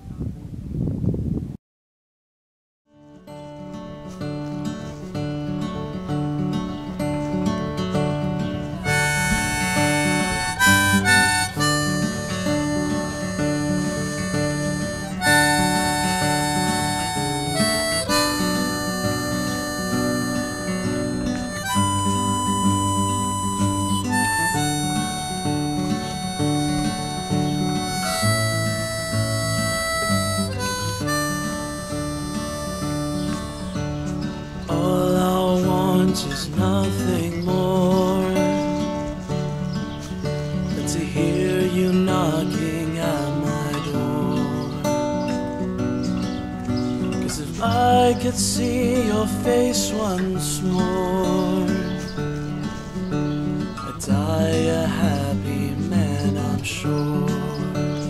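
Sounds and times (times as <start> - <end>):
acoustic guitar strumming: 2.9 - 58.0
harmonica melody: 8.2 - 35.0.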